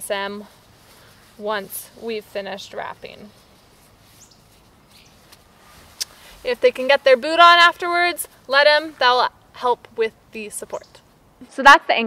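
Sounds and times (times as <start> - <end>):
faint high bird chirps: 4.1 - 5.3, 10.7 - 11.1.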